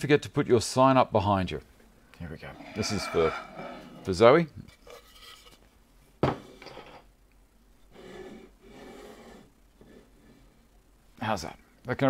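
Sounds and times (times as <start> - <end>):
wood rubbing and scraping: 2.5 - 4.2
wooden sign knocking on workbench: 6.2 - 6.4.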